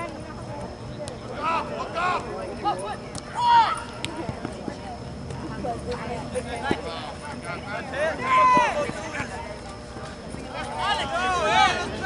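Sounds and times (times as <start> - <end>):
voices shouting: 1.3 - 4.0, 7.8 - 9.4, 10.4 - 12.0.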